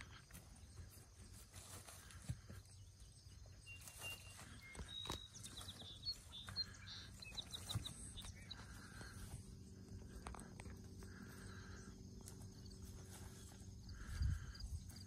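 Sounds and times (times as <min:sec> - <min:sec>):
horses chewing grass: 0:00.0 - 0:14.1.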